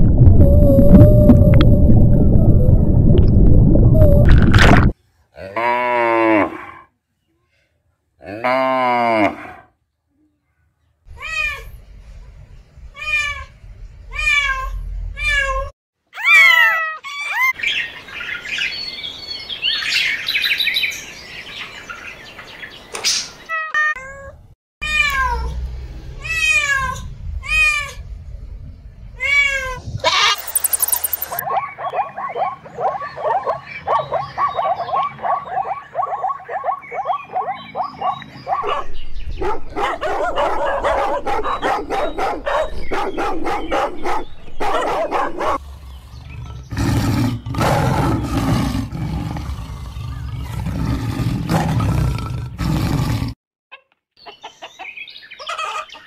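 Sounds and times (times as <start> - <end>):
cat meowing: 29.2 - 31.0
dog barking: 31.4 - 45.6.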